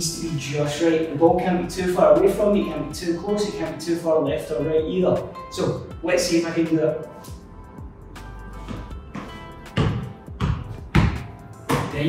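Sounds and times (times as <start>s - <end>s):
background music: 0.0s - 12.0s
ball bouncing on tiled floor: 8.7s - 12.0s
football thudding on feet: 8.7s - 12.0s.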